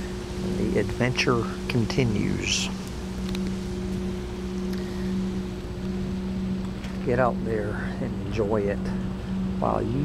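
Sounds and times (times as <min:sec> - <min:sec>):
ferry engines droning: 0:00.0 - 0:10.0.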